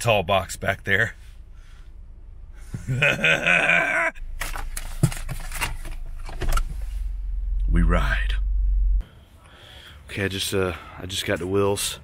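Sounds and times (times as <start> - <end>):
man groaning: 2.9 - 4.2
low rumble: 5.7 - 9.2.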